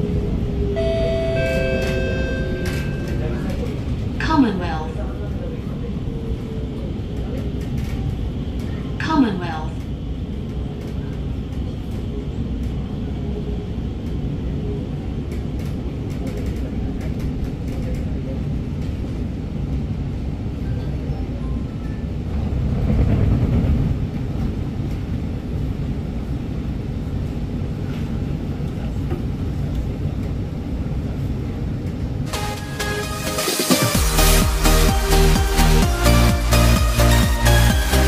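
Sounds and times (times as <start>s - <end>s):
train wheels rumbling on rail: 0.0s - 32.4s.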